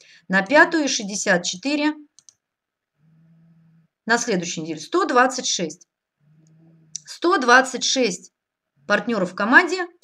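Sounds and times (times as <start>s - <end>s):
faint low hum: 0.1s - 10.0s
computer mouse clicks: 2.1s - 2.4s.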